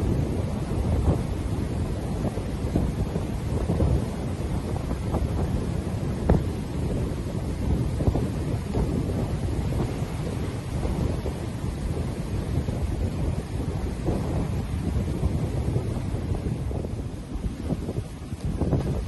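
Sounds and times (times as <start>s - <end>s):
small waves washing onto shore: 0.0s - 19.0s
wind buffeting microphone: 0.0s - 19.0s.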